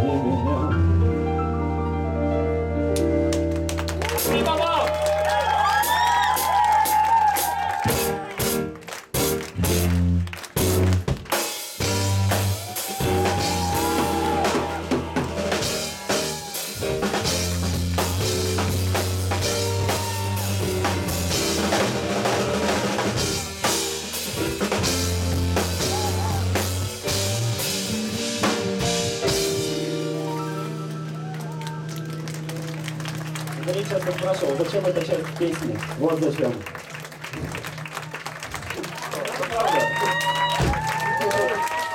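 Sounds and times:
drum kit: 2.9 - 34.8
driving bass guitar: 7.9 - 34.9
saxophone: 24.9 - 28.5.

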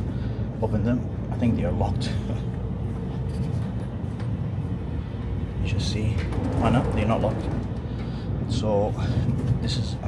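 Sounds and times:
faint steady hum: 0.0 - 10.0
train rumble inside carriage: 0.0 - 10.0.

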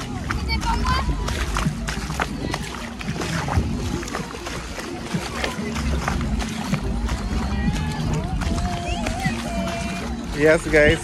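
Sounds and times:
person wading through water: 0.0 - 11.0
small waves washing onto shore: 0.0 - 11.0.

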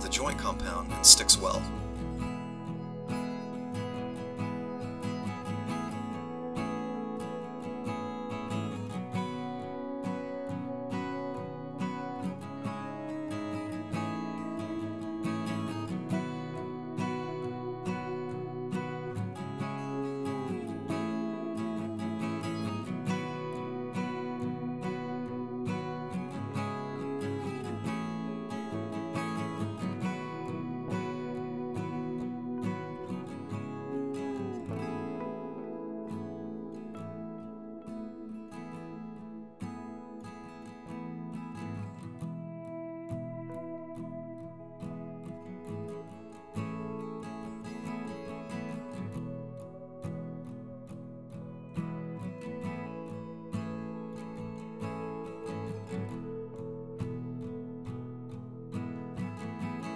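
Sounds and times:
acoustic guitar music: 0.0 - 59.9.

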